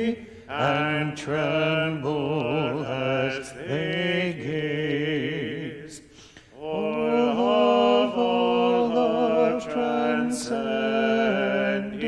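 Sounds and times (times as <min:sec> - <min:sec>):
man singing chant: 0:00.0 - 0:06.0, 0:06.6 - 0:12.0.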